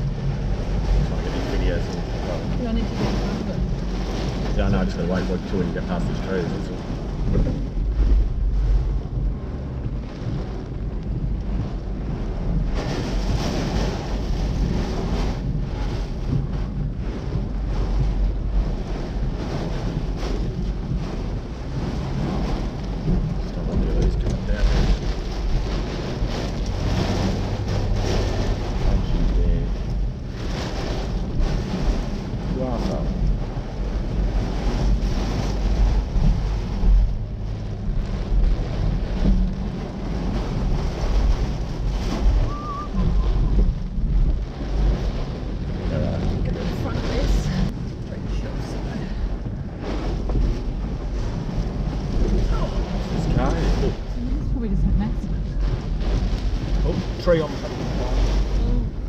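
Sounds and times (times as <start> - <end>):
driving rain on a car: 0.0 - 59.0
strong wind gusts: 0.0 - 59.0.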